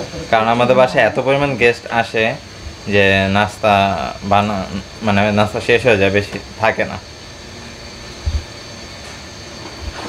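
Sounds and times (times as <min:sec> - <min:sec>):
fan running: 0:00.0 - 0:10.0.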